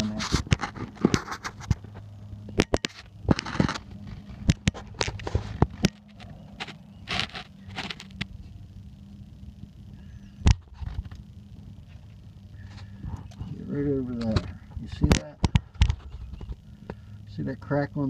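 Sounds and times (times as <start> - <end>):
clicks knocks and scrapes on metal: 0.0 - 1.9
steady low hum: 0.0 - 18.0.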